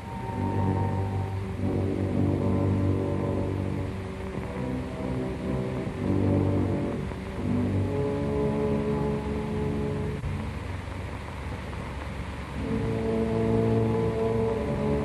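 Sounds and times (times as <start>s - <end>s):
dark slow orchestral music: 0.0s - 15.0s.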